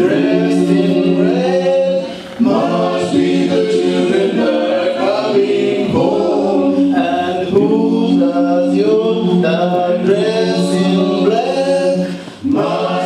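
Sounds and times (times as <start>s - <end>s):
vocal quartet singing unaccompanied: 0.0s - 13.0s.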